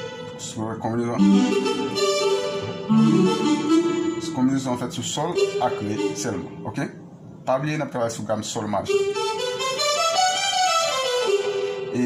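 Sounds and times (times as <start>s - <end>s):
electronic keyboard scale run: 0.0s - 6.8s, 8.8s - 12.0s.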